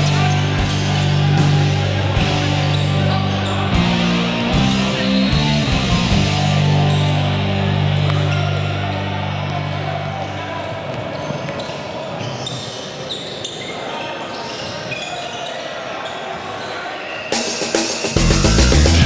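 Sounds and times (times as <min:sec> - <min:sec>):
rock music: 0:00.0 - 0:09.1, 0:17.4 - 0:19.0
players' voices echoing: 0:00.0 - 0:19.0
shoe squeaks: 0:02.5 - 0:03.6, 0:11.0 - 0:18.2.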